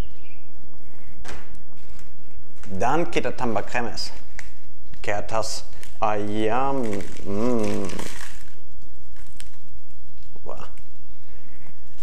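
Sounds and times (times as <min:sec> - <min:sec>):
crumbs rustling from paper packet: 0:04.1 - 0:10.9
person speaking: 0:05.0 - 0:08.4.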